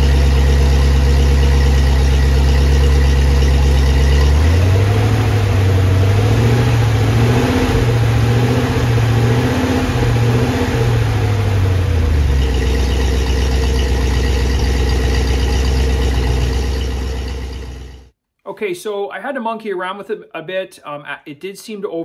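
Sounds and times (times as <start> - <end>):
engine idling: 0.0 - 18.1.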